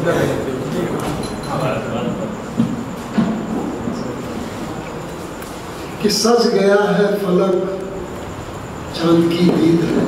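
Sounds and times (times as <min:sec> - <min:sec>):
hall noise: 0:00.0 - 0:10.0.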